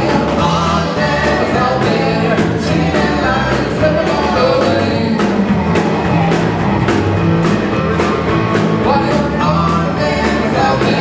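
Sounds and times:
woman singing: 0.0s - 5.5s, 8.8s - 11.0s
drum kit beat: 0.0s - 11.0s
electric guitar: 0.0s - 11.0s
low bass notes: 0.0s - 11.0s.

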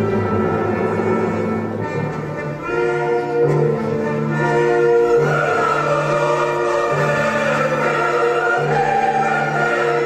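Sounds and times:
choir with orchestra: 0.0s - 10.0s.

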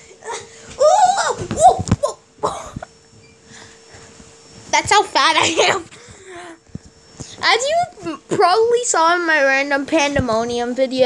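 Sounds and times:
child coughing: 2.0s - 2.9s, 5.4s - 5.9s.

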